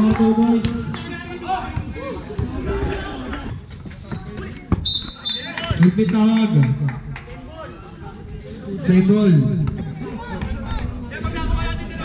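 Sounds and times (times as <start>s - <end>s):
voices of players: 0.0s - 12.0s
basketball bouncing on concrete: 3.6s - 5.0s.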